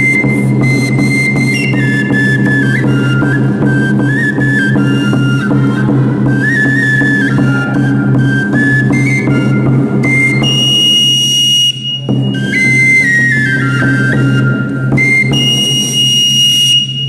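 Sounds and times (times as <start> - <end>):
high-pitched flute melody: 0.0 - 17.0.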